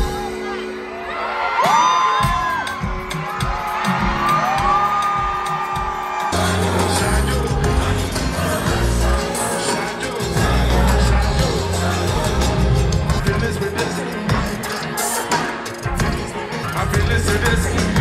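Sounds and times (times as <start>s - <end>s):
live concert music: 0.0s - 18.0s
heavy bass beat: 2.2s - 18.0s
crowd singing: 6.0s - 18.0s.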